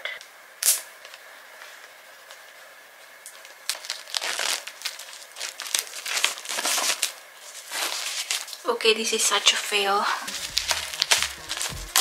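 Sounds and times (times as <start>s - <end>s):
plastic shrink-wrap crinkling: 3.2s - 8.7s, 9.3s - 12.0s.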